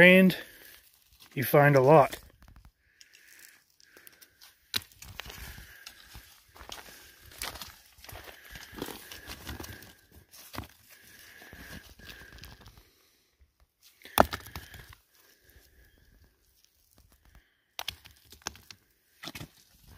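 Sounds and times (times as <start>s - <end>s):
gravel scraping and crunching: 0.0s - 13.0s.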